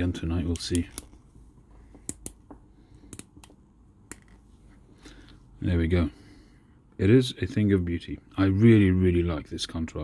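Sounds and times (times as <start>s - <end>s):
faint clicks and taps of pipe: 1.8s - 4.4s.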